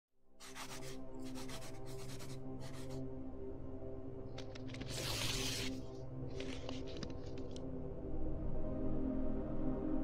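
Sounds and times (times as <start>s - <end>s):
pen scratching on paper: 0.4s - 3.0s, 4.8s - 5.7s
low musical drone: 0.5s - 10.0s.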